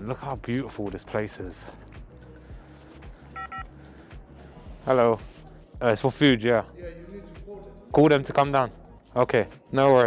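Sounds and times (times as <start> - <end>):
background music: 0.0 - 10.0
intercom keypad beeps: 3.4 - 3.6.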